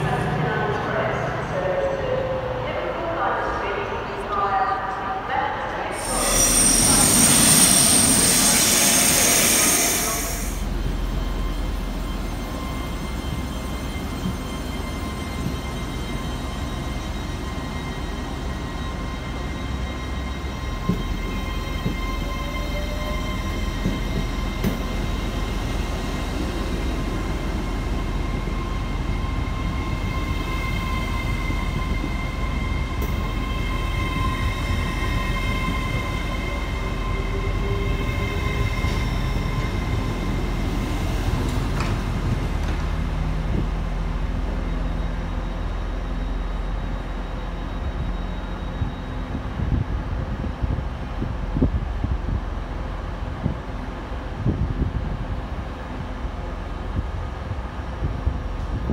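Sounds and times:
train high whine: 4.8s - 58.9s
train wheels rumbling on track: 5.7s - 58.9s.

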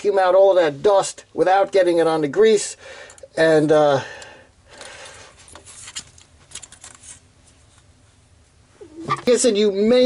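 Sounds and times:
clicks and rattles of computer parts: 4.8s - 7.2s.

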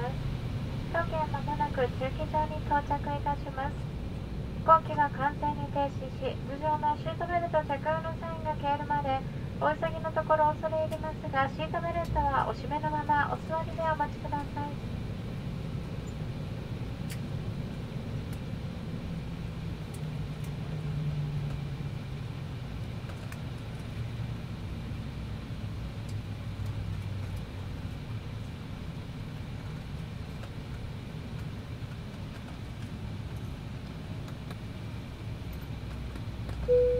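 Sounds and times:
jet engines idling rumble: 0.0s - 36.9s.

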